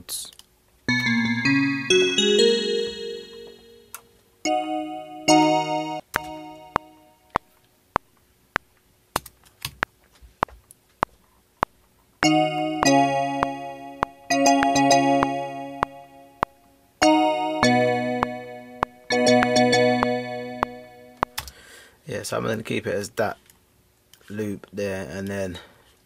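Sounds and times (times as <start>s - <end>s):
piano chords: 0.9s - 7.3s, 12.2s - 21.4s
metronome clicking: 5.3s - 7.4s.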